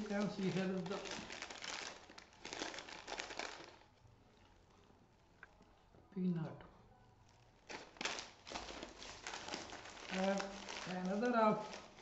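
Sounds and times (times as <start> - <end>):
plastic bag crinkling: 0.0 - 5.2, 7.2 - 12.0.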